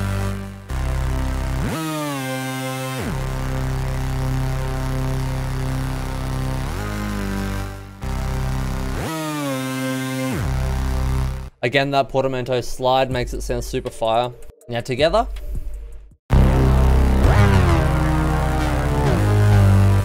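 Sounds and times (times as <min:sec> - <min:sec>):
supersaw synth lead melody: 0:00.0 - 0:11.5, 0:16.3 - 0:20.0.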